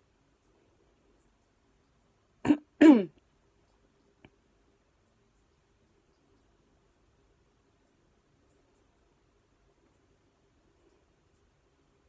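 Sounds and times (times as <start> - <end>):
woman clearing her throat: 2.4 - 3.2.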